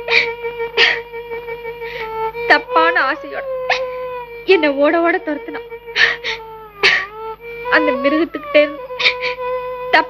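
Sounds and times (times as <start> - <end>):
film score long notes: 1.9 - 8.9
woman's strained voice: 2.3 - 10.0.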